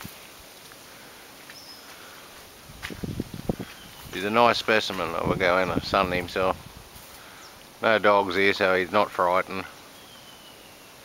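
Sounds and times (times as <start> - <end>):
faint steady hiss: 0.0 - 11.0
low thumps and rustles: 2.7 - 7.2.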